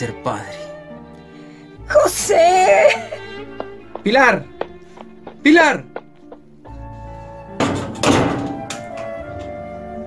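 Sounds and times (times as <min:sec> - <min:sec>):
dramatic background music: 0:00.0 - 0:10.0
door slamming shut: 0:07.6 - 0:08.9.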